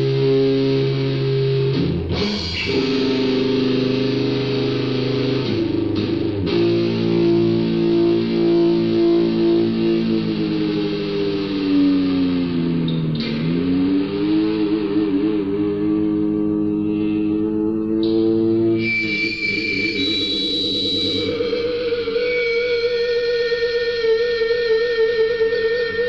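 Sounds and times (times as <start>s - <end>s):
electric guitar sustained chords: 0.0s - 26.0s.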